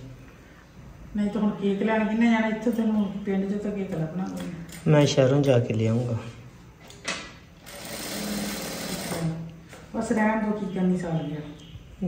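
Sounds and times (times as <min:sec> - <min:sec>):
sewing machine stitching: 0:07.6 - 0:09.4.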